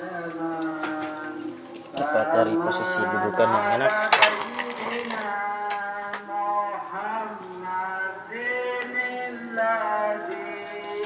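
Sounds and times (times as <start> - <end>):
person singing slow melody: 0.0 - 11.0.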